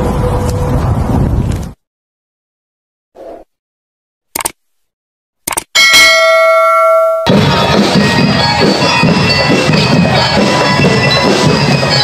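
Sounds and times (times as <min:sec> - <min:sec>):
bell-like chime: 0:05.8 - 0:12.0
marching band music: 0:07.2 - 0:12.0
crowd noise: 0:07.3 - 0:12.0.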